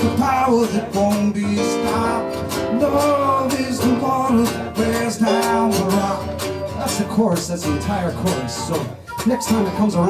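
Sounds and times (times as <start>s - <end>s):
acoustic guitar strumming: 0.0s - 10.0s
band backing: 0.0s - 10.0s
person singing: 0.0s - 10.0s.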